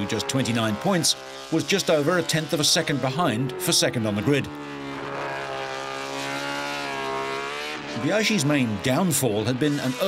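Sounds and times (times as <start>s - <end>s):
racing motorcycle engine: 0.0s - 10.0s.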